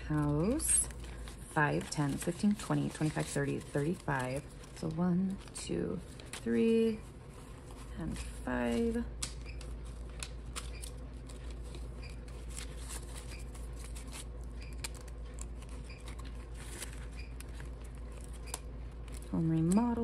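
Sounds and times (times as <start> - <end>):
banknotes and vinyl pockets rustling: 0.0 - 20.0
steady low hum: 0.0 - 20.0.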